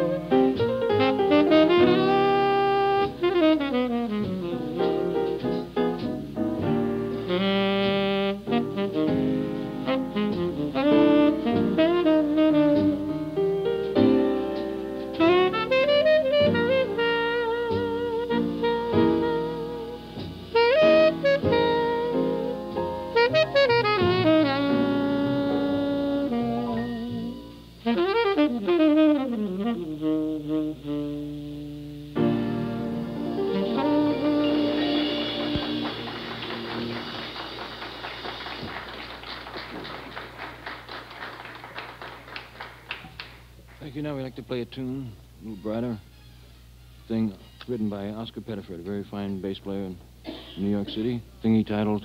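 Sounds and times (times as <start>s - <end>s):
saxophone phrases: 0.0s - 5.7s, 7.0s - 43.0s, 44.0s - 46.1s
jazz piano bass and drums: 0.0s - 39.9s
audience applause: 34.6s - 44.0s.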